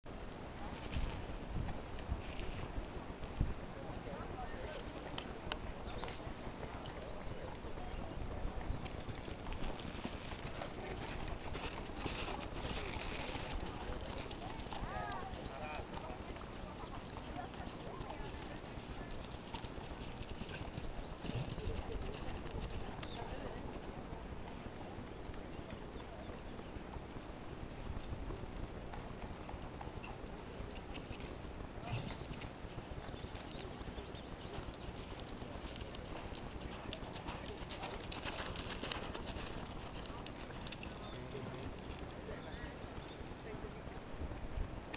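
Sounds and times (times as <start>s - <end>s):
horse hoofbeats on sand: 4.7s - 43.4s.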